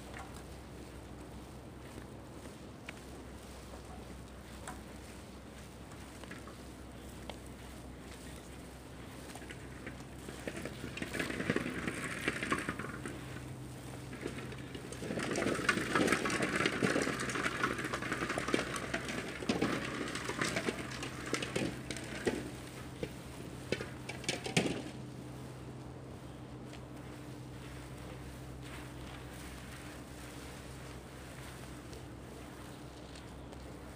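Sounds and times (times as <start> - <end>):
steady low hum: 0.0 - 33.9
net and rope dragging on concrete: 27.0 - 33.2.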